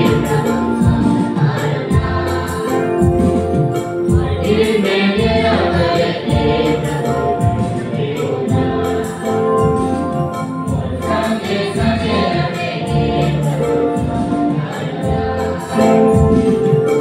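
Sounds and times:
group singing worship song: 0:00.0 - 0:17.0
instrumental accompaniment with beat: 0:00.0 - 0:17.0.

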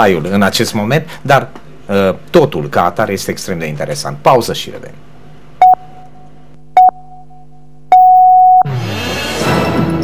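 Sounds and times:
countdown beeps: 0:05.6 - 0:05.9, 0:06.8 - 0:08.7.

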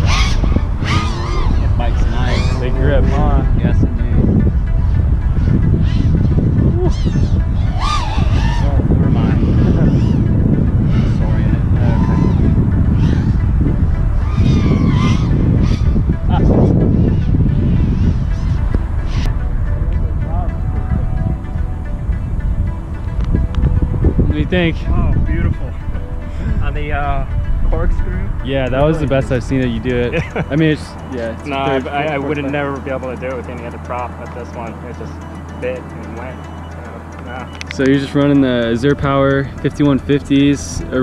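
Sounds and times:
wind buffeting microphone: 0:00.0 - 0:34.6, 0:38.0 - 0:41.0
drone motors whining: 0:00.0 - 0:41.0.

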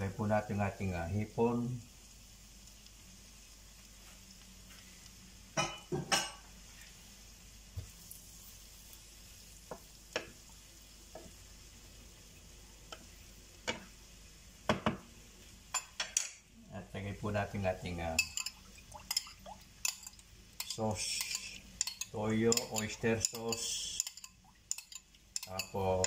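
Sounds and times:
faint sizzle: 0:00.0 - 0:26.0
spatula stirring noodles in pan: 0:06.7 - 0:14.4, 0:18.2 - 0:26.0.

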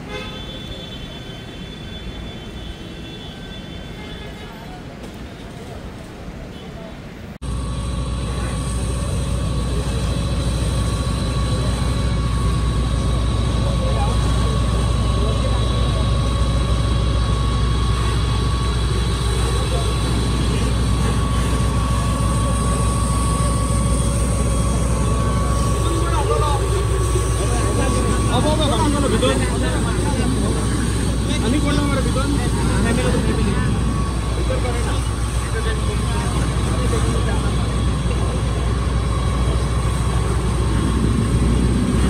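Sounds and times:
pump engine droning with whine: 0:07.4 - 0:42.0.

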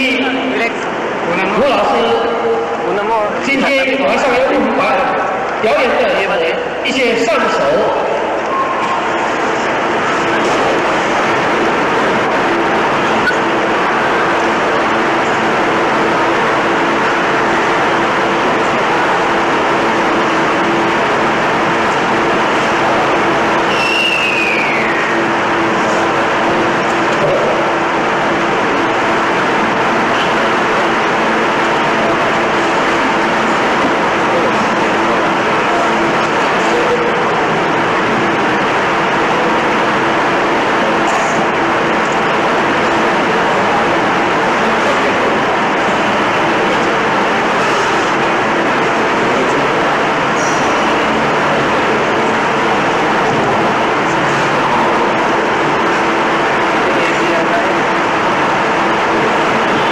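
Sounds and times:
loud noise hiss: 0:00.0 - 0:59.9
falling whistle-like tone: 0:08.5 - 0:09.0, 0:23.6 - 0:25.3.

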